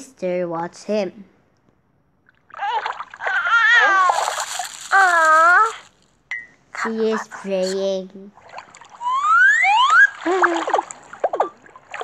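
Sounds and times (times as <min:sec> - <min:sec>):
water splash: 0:02.6 - 0:05.0, 0:08.4 - 0:12.0.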